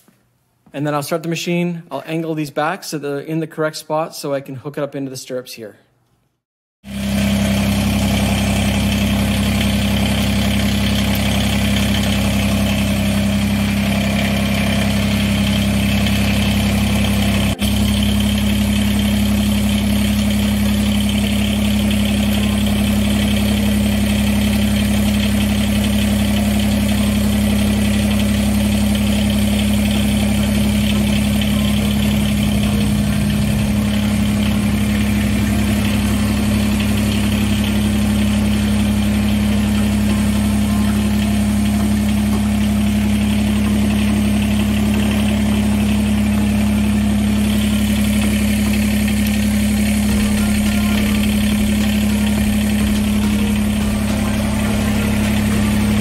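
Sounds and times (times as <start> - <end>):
diesel tractor engine idling: 6.9 - 56.0.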